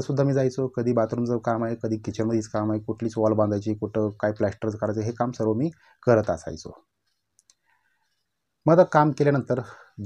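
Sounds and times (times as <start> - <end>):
man speaking: 0.0 - 6.9, 8.6 - 10.0
faint short clicks: 7.1 - 7.7.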